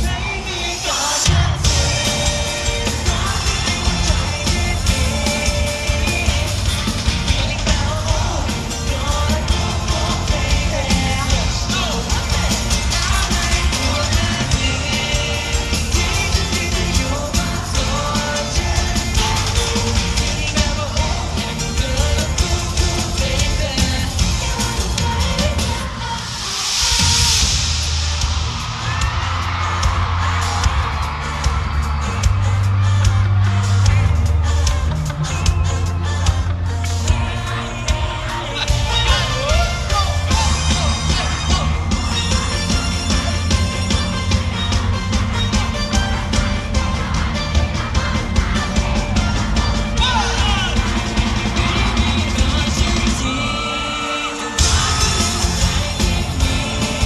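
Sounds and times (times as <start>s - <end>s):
crowd screaming: 0.0s - 57.0s
live pop song with bass beat: 0.0s - 57.0s.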